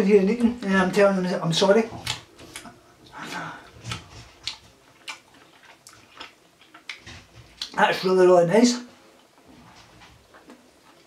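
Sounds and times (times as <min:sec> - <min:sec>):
chewing crunchy bar: 0:02.0 - 0:07.8.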